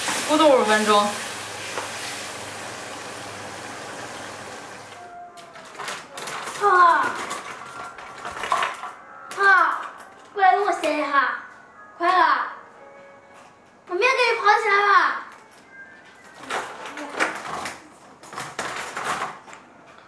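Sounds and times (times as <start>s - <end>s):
girl talking: 6.6s - 7.3s, 9.3s - 12.6s, 13.9s - 15.3s, 16.4s - 18.0s.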